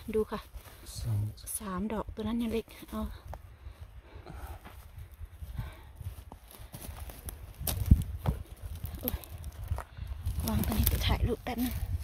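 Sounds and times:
footsteps on gravelly ground: 0:04.5 - 0:12.0.

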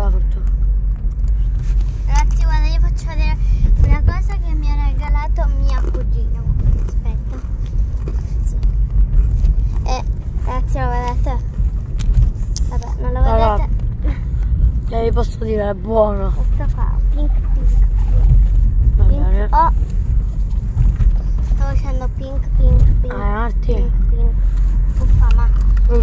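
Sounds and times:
car rumble from inside cabin: 0:00.0 - 0:26.0
voices talking: 0:12.7 - 0:14.2.

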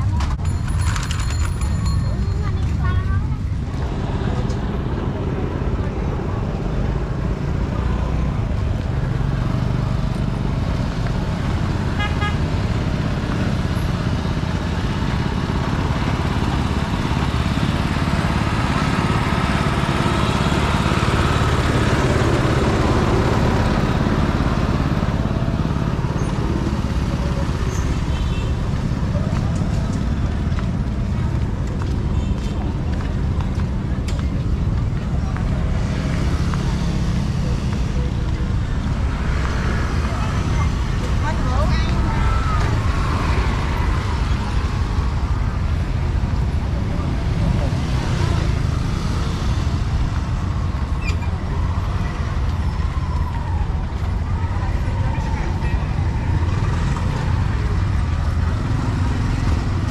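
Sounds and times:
passers-by talking: 0:00.0 - 0:11.9, 0:12.6 - 0:59.9
traffic and motorbikes rumble: 0:00.0 - 0:59.9.

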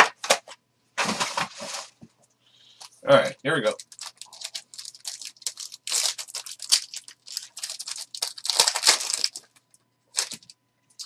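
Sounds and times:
foil wrapper tearing and crinkling: 0:03.7 - 0:10.5.

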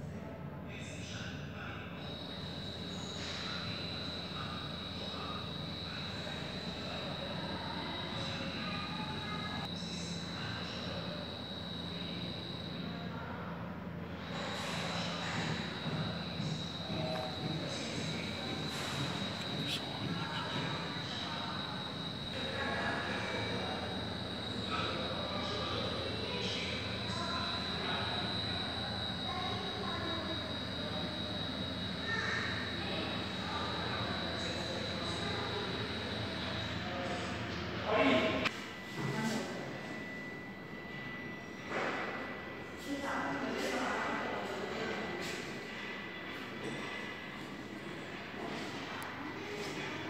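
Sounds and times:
distant indistinct voices: 0:00.0 - 0:50.0
high-pitched whine: 0:14.1 - 0:46.9.

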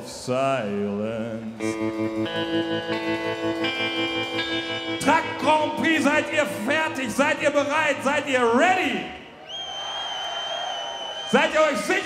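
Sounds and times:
crowd cheering: 0:03.6 - 0:12.0
high-pitched whistle: 0:09.4 - 0:11.5.

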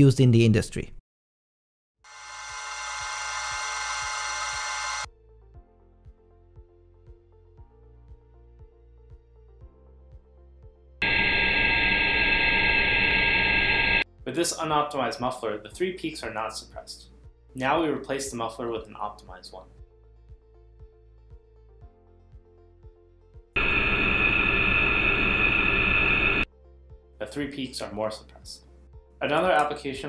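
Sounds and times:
loud test noise with steady tones: 0:02.1 - 0:05.1, 0:11.0 - 0:14.0, 0:23.6 - 0:26.5.

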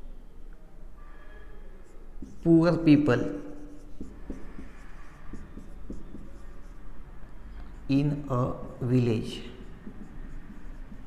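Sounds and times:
marker pen scratching on whiteboard: 0:01.8 - 0:11.0.

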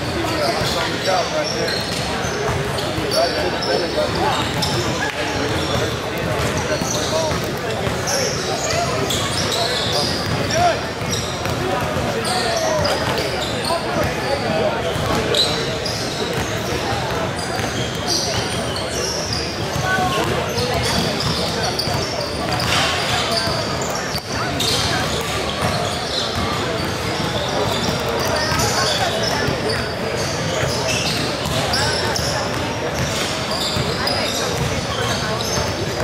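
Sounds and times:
chatter of voices: 0:00.0 - 0:36.0.

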